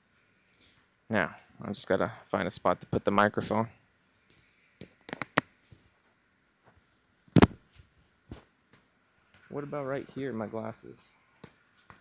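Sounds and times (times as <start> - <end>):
microphone handling clicks and rubs: 4.8 - 6.1, 6.7 - 8.5.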